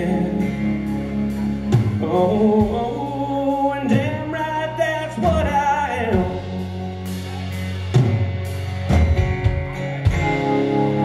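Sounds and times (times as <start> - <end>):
man singing: 0.0 - 7.5
live country band playing: 0.0 - 11.0.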